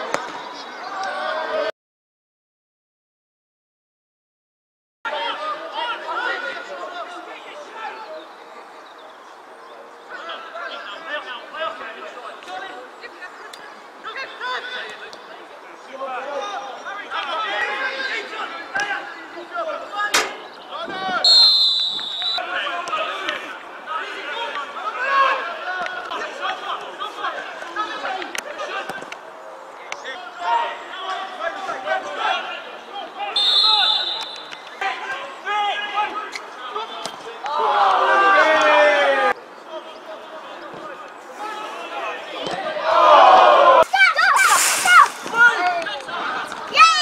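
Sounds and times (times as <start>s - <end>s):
people calling and chattering: 0.0s - 1.7s, 5.1s - 47.0s
sharp knock: 20.1s - 20.5s
referee's whistle blast: 21.2s - 22.4s, 33.4s - 34.6s
people shouting: 37.5s - 39.3s, 42.6s - 45.6s.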